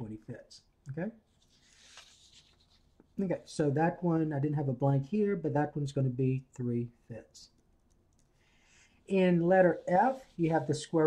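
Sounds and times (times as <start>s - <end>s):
paper sheets rustling: 1.3s - 3.0s.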